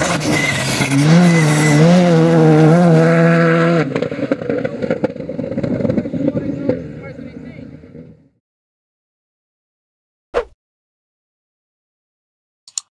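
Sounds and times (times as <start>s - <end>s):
rally car engine at full throttle: 0.0s - 8.4s.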